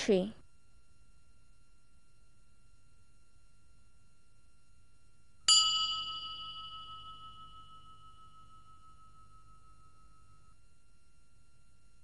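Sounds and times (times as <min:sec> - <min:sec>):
bell-like chime: 0:05.5 - 0:10.6.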